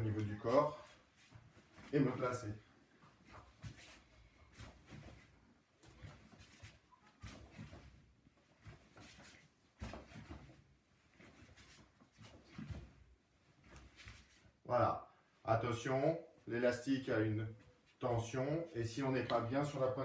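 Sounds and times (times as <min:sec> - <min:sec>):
clothing and band rustling: 0:00.0 - 0:14.7.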